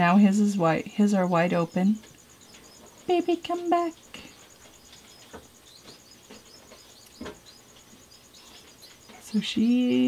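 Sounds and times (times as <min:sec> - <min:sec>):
faint chirping: 0:00.0 - 0:10.0
soft knocks: 0:05.2 - 0:07.4.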